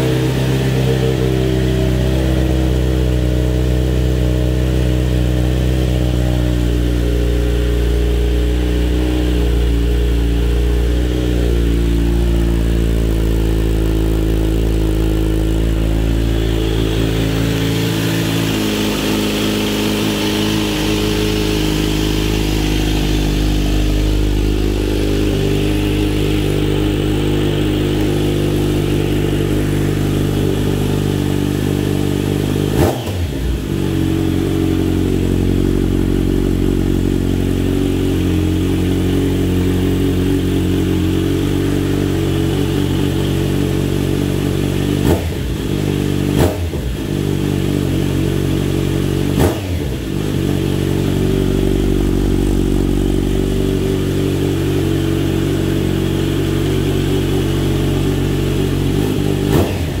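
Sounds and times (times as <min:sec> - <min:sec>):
motorcycle engine idling: 0:00.0 - 1:00.0.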